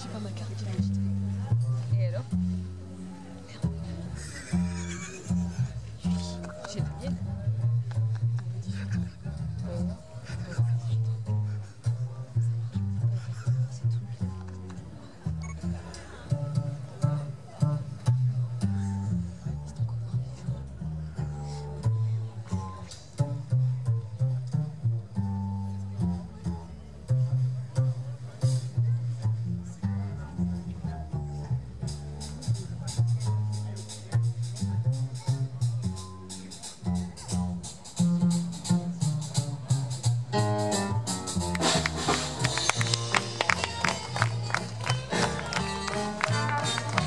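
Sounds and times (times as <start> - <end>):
double bass plucked: 0.0 - 47.0
jazz band backing: 0.0 - 47.0.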